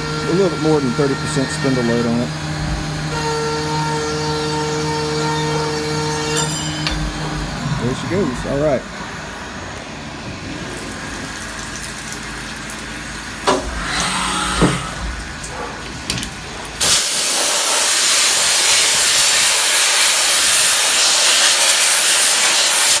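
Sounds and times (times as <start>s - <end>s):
milling machine rumbling: 4.0s - 12.1s
coolant spray hissing: 14.4s - 23.0s.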